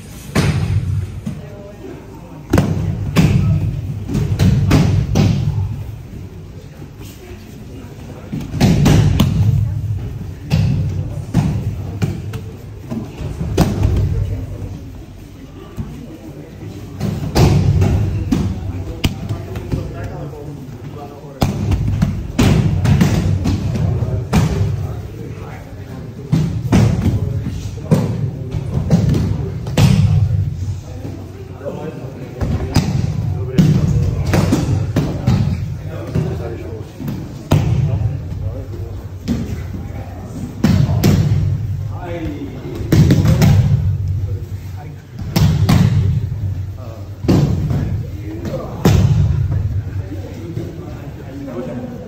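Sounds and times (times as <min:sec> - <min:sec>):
voices in a hall: 0:00.0 - 0:52.0.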